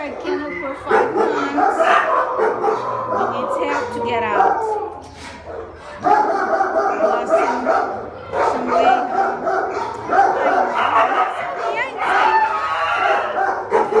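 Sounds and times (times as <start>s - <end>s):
dog whining and howling: 0.0s - 14.0s.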